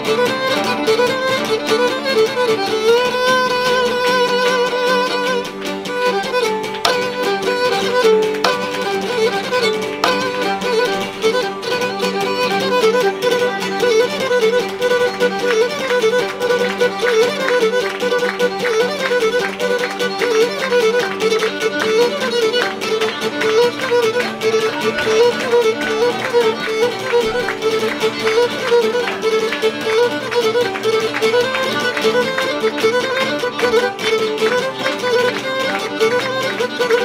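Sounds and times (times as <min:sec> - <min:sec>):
lutes strumming chords: 0:00.0 - 0:37.0.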